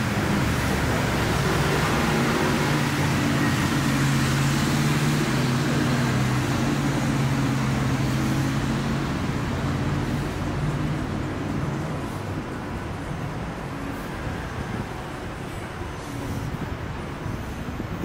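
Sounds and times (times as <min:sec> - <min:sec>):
road noise: 0:00.0 - 0:18.0.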